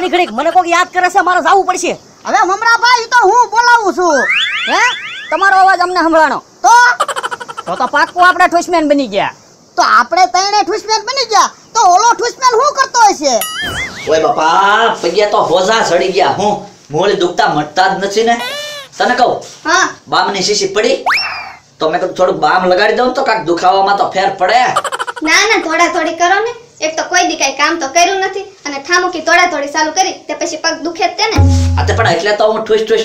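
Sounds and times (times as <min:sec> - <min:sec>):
voice with sliding exaggerated pitch: 0:04.1 - 0:05.8, 0:13.4 - 0:14.5, 0:18.4 - 0:19.1, 0:21.1 - 0:21.6
cartoon boing sound effect: 0:04.2 - 0:05.4, 0:13.4 - 0:14.2, 0:18.4 - 0:18.9, 0:31.4 - 0:32.2
person speaking: 0:18.4 - 0:19.2, 0:31.4 - 0:32.4.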